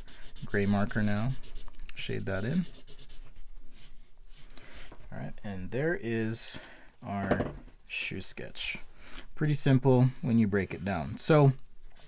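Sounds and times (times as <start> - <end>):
felt-tip marker rubbing on paper: 0.0 - 4.4.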